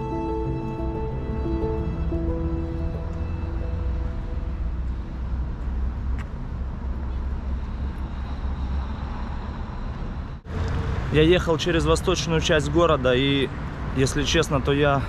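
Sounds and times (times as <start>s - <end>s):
background music: 0.0s - 5.6s
heavy low rumble: 0.0s - 12.2s
road traffic: 0.0s - 15.0s.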